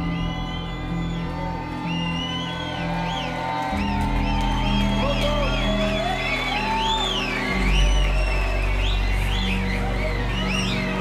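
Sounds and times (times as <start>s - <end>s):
crowd whooping and cheering: 0.0s - 11.0s
loud techno music: 0.0s - 11.0s.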